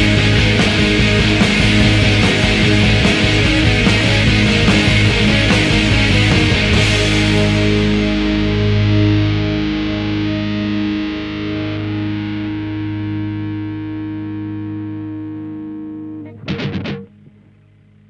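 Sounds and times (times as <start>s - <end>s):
sharp scratchy hits: 0.0s - 8.0s
distorted electric guitar chord: 0.0s - 18.0s.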